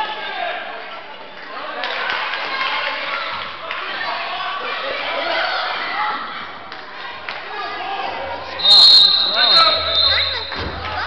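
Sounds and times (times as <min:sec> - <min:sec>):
voices echoing in gym: 0:00.0 - 0:11.0
referee's whistle blast: 0:08.6 - 0:10.8.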